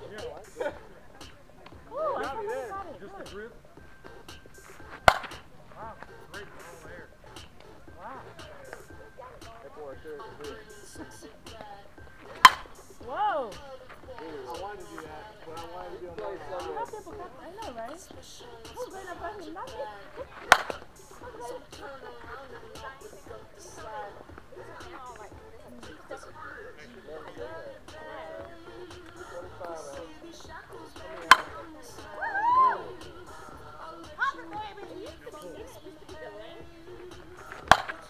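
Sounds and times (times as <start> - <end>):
background music with singing: 0.0 - 38.0
bat cracking ball: 4.2 - 5.5, 12.2 - 12.9, 20.4 - 20.9, 31.0 - 31.7, 37.2 - 38.0.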